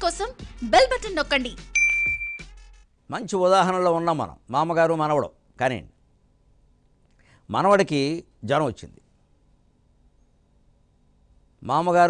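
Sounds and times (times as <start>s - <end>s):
bright electronic ding: 1.8s - 2.5s.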